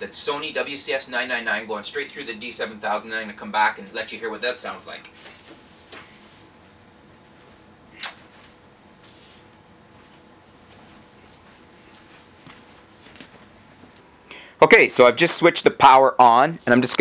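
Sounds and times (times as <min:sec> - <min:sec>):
faint steady hum and hiss: 0:00.0 - 0:17.0.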